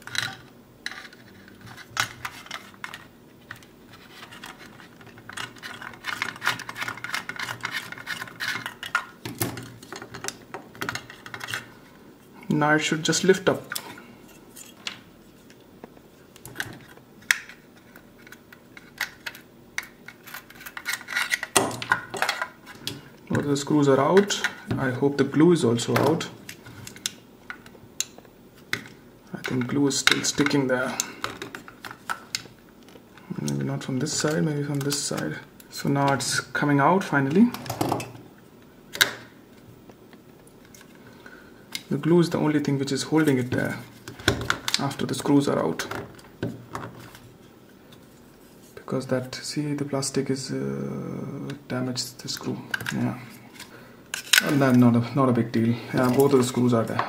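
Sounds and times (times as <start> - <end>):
plastic parts clicking: 0.0 - 11.7
faint rubbing and handling: 0.8 - 10.2, 46.9 - 48.9.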